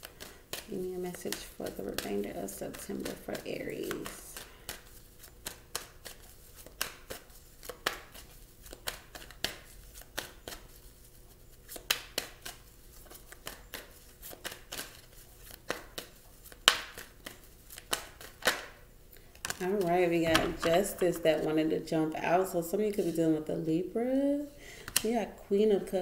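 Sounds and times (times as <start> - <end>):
cards being shuffled: 0.0 - 18.8, 19.4 - 23.3, 24.8 - 25.2.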